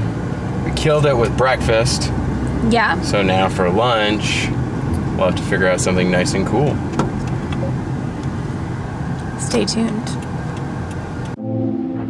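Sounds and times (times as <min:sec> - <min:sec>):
car engine and road rumble: 0:00.0 - 0:11.4
background music with sustained chords: 0:11.4 - 0:12.0.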